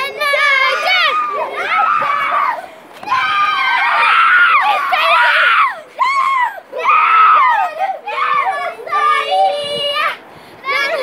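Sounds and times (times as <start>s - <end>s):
children shrieking and screaming: 0.0s - 11.0s.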